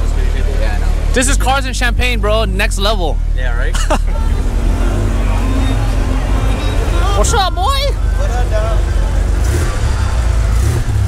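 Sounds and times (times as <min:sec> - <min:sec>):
car engine rumbling past: 0:00.0 - 0:11.0.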